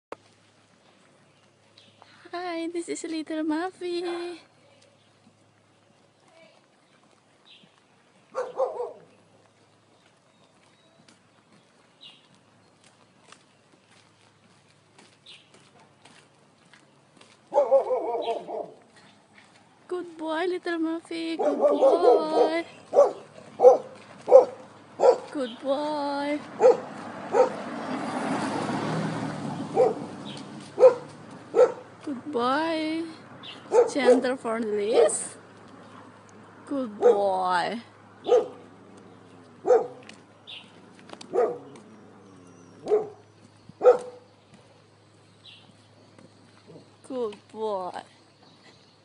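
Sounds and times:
dog barking: 8.3 - 9.1, 17.5 - 18.8, 21.4 - 25.3, 26.6 - 27.6, 29.7 - 30.1, 30.8 - 31.9, 33.7 - 34.2, 34.9 - 35.2, 37.0 - 37.2, 38.2 - 38.7, 39.6 - 40.0, 41.3 - 41.8, 42.8 - 43.2, 43.8 - 44.3
car driving past: 26.4 - 32.1, 37.8 - 47.0.

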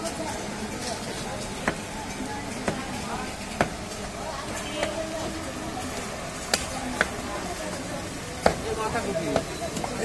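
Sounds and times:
blade chopping meat on wood: 1.4 - 3.9, 4.7 - 5.1, 6.5 - 7.2, 8.4 - 9.9.

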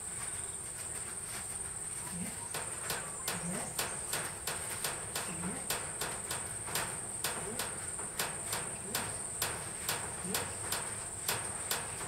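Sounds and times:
crisp ticks: 2.3 - 12.0.

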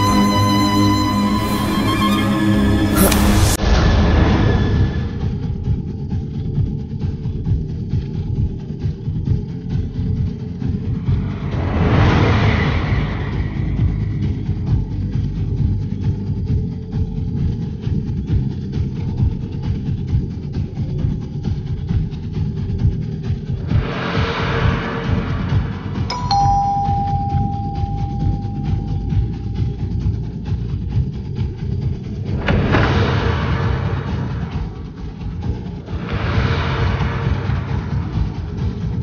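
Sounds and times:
background music with low beat: 0.0 - 3.6, 25.6 - 39.0
low pulsing suspense music: 0.0 - 39.0
ding-dong doorbell chime: 26.1 - 29.9.

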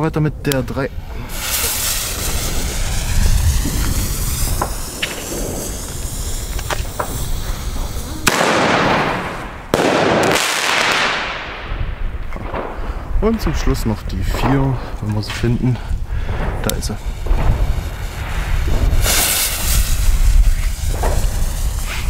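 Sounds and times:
firework shell launch bang: 1.3 - 7.2, 18.4 - 22.0.

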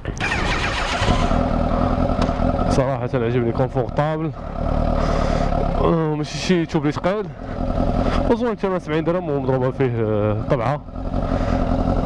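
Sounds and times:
motorcycle engine under throttle: 0.0 - 12.0.

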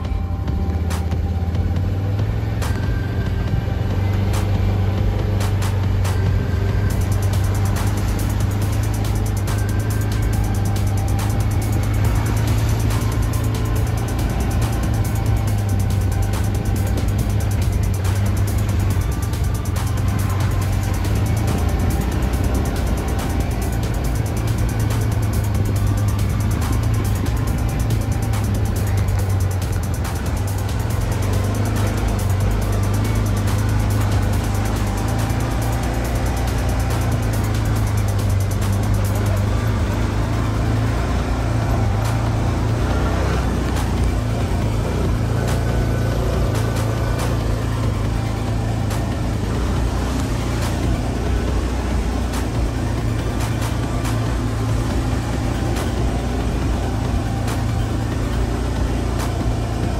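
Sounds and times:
music playing: 0.0 - 59.9
utility vehicle engine running: 0.0 - 59.9.

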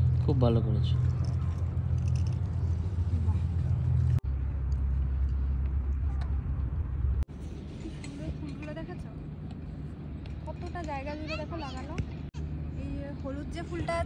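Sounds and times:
wind on microphone: 4.9 - 7.3.

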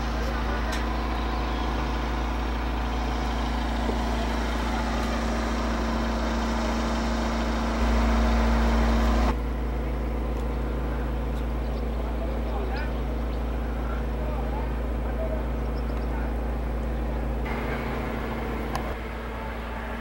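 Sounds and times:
engine hum: 0.0 - 20.0.

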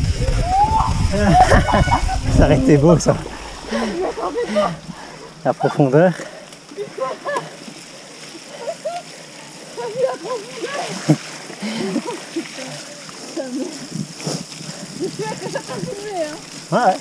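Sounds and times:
bike tyres splashing through mud: 0.0 - 17.0
person talking: 2.2 - 4.8.

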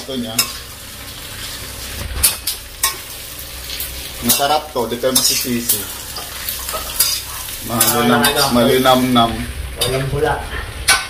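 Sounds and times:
utensil stirring in wok: 0.0 - 10.0
pork skin sizzling in oil: 0.0 - 11.0
utensil clanking on pan: 4.2 - 7.2.

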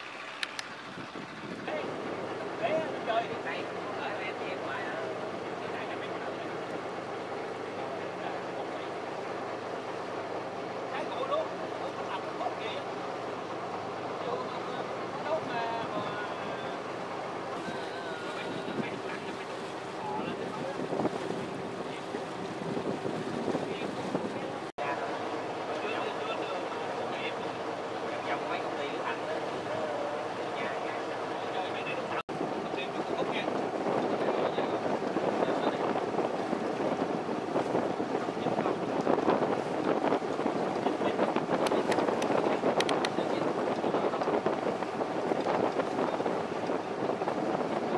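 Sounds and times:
wind on microphone: 0.0 - 6.3, 13.8 - 47.9
motorboat engine drone: 0.0 - 47.9
water rushing along hull: 0.0 - 47.9.

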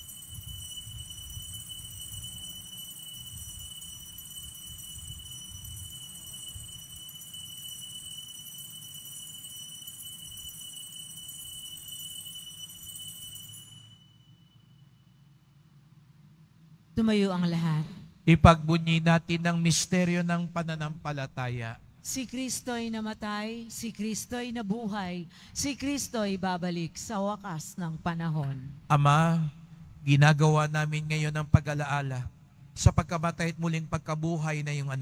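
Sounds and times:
altar bells ringing: 0.0 - 15.0.

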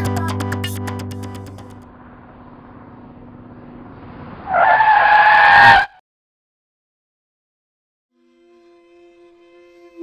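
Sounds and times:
car approaching: 0.0 - 5.9
tyres screeching: 4.4 - 6.0.

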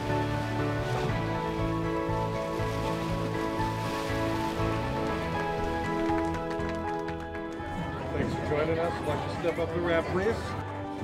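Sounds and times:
music with pulsing bass line: 0.0 - 7.6.

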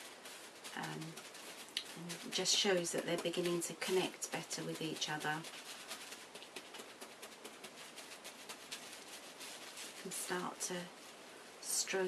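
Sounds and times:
hands patting wet felt: 0.0 - 10.8.

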